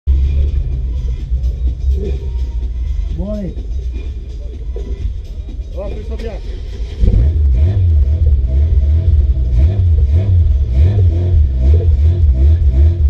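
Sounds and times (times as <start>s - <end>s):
race car engine idling: 3.8s - 13.0s.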